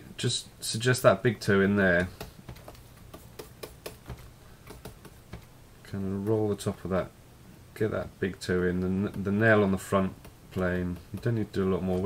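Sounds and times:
stylus tapping on tablet: 2.0s - 5.5s, 10.1s - 11.4s.

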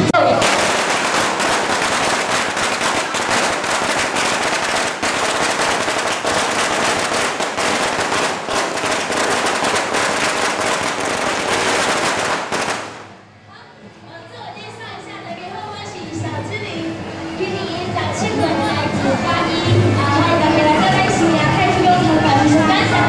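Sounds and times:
firecrackers crackling: 0.0s - 13.2s.

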